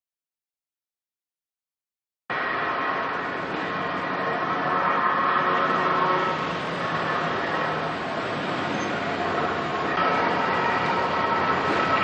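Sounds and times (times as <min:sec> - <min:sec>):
street traffic noise: 0:02.3 - 0:12.0.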